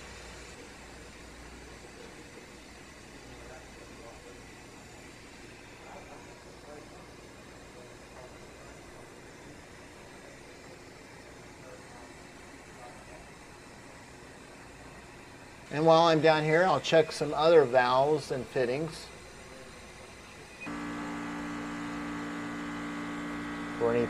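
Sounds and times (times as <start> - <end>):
faint machinery hum: 0.0 - 24.0.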